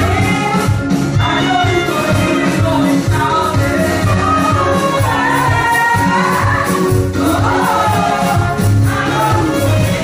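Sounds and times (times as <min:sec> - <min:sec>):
women singing gospel in harmony: 0:00.0 - 0:10.0.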